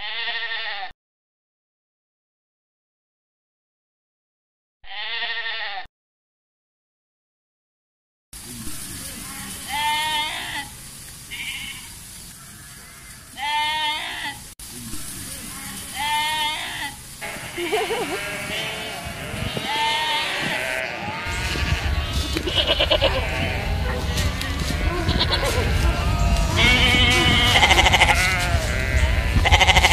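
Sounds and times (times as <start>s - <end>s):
sheep bleating: 0.0s - 0.9s, 4.9s - 5.9s, 9.2s - 14.4s, 15.4s - 29.9s
loud low noise: 20.6s - 29.9s.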